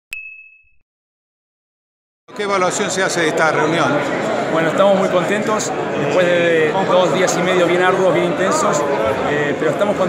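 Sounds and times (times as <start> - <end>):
bright ding: 0.1 - 0.8.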